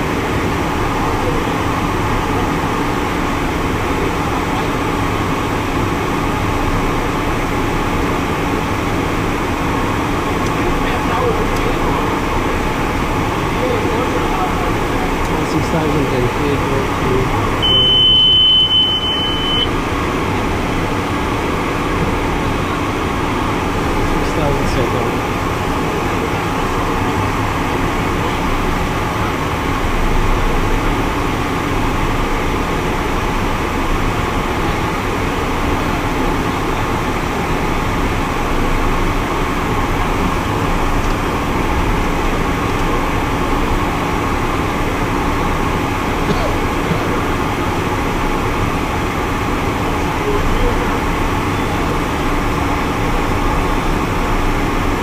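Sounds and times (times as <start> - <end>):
jet cockpit airflow and engine: 0.0 - 55.0
high electronic alert beep: 17.6 - 19.7.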